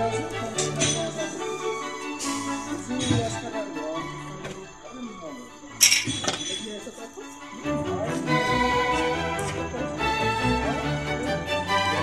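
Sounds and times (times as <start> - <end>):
background music: 0.0 - 12.0
metal tube clinking on concrete: 0.5 - 1.4, 2.2 - 3.4, 5.8 - 7.4.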